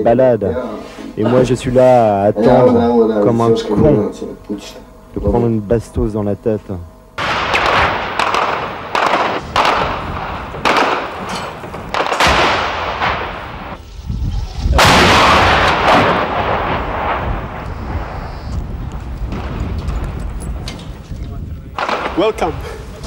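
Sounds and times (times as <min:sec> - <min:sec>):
sharp gunshots: 0:07.2 - 0:13.8, 0:14.7 - 0:18.5, 0:21.8 - 0:22.7
loud blast with rumble: 0:07.2 - 0:21.1, 0:21.7 - 0:23.0.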